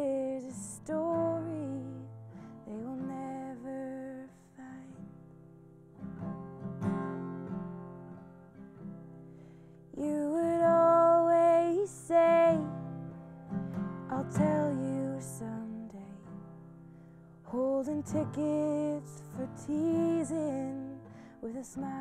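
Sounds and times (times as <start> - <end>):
woman singing: 0.0 - 5.2, 9.9 - 13.2, 14.0 - 16.5, 17.4 - 22.0
acoustic guitar: 0.0 - 22.0.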